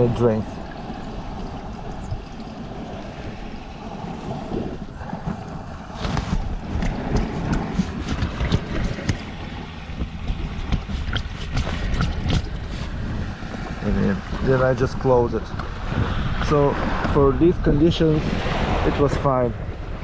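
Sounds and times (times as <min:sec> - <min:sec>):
sea washing: 0:00.0 - 0:20.0
wind buffeting microphone: 0:00.0 - 0:20.0
knocks and rubbing against kayak: 0:04.1 - 0:14.6.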